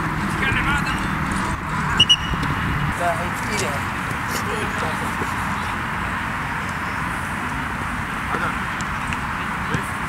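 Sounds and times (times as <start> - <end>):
steady background noise: 0.0 - 10.0
short high-pitched peeps: 2.0 - 2.4.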